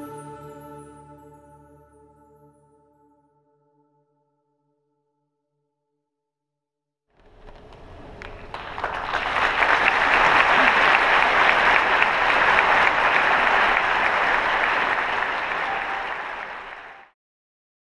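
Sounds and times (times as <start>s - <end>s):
audience applauding: 7.2s - 17.2s.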